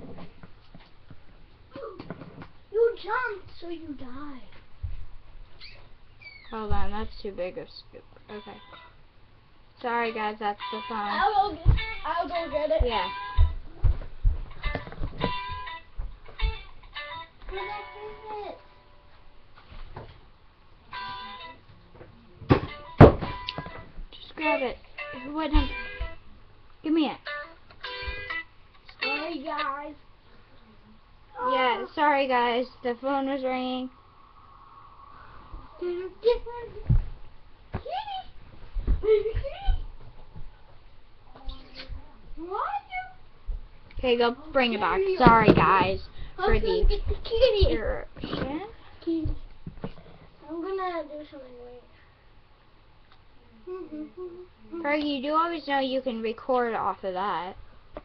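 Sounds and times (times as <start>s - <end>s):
girl speaking loudly: 10.8s - 13.2s, 29.0s - 30.0s, 31.3s - 32.1s, 44.3s - 48.7s.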